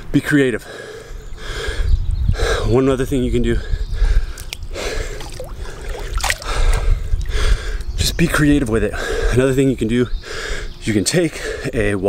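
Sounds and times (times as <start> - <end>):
water drips: 4.4 - 7.4
pool water sloshing: 5.1 - 6.9.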